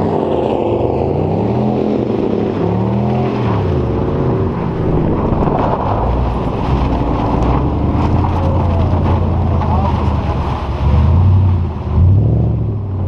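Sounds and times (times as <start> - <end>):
car engine running under load: 0.0 - 13.0
wind buffeting microphone: 0.0 - 13.0.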